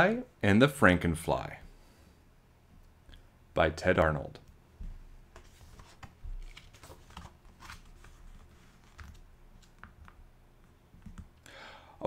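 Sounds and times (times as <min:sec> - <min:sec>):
book pages turning: 0:05.3 - 0:10.2.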